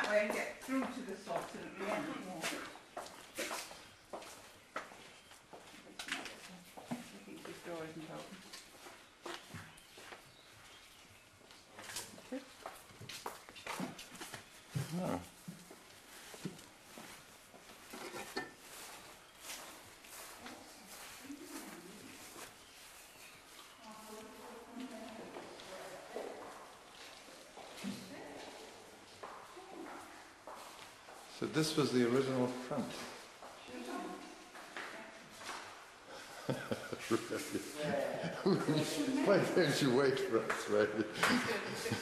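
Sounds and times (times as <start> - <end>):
footsteps of people walking: 0.0 - 42.0.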